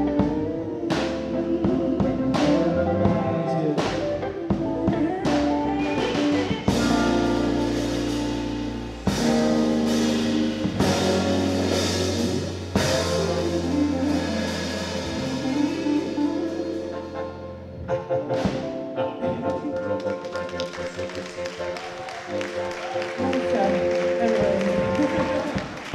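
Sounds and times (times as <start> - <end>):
voices singing: 0.0 - 8.3, 9.1 - 17.6
deep bass: 0.0 - 25.9
drum kit: 0.0 - 25.9
electric guitar: 0.0 - 25.9
keyboard: 0.0 - 25.9.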